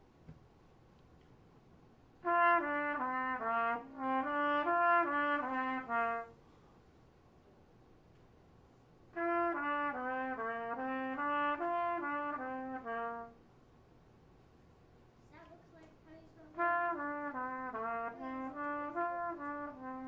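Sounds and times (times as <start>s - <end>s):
brass instrument held notes: 2.2s - 6.5s, 9.1s - 13.5s, 16.4s - 20.0s.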